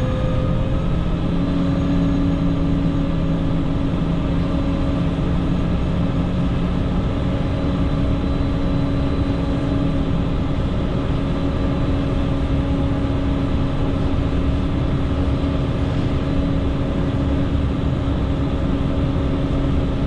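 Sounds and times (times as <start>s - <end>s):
diesel engine humming: 0.0s - 20.0s.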